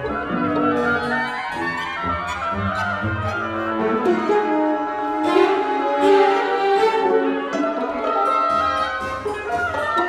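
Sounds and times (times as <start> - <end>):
chamber orchestra playing: 0.0 - 10.0.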